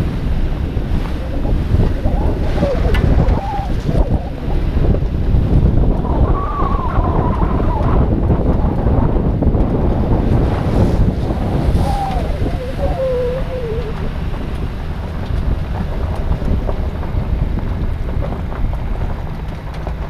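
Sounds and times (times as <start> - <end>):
truck engine rumble: 0.0 - 20.0
tyres on dirt track: 0.0 - 20.0
wind buffeting microphone: 0.0 - 20.0
faint wavering squeal: 1.1 - 4.8, 11.3 - 14.3.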